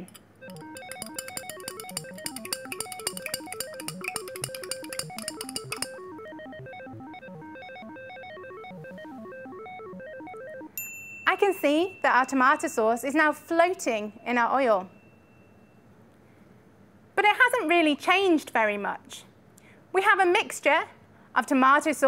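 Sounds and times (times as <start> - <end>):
rapid ticking: 0.0 - 10.7
light background music: 0.4 - 10.8.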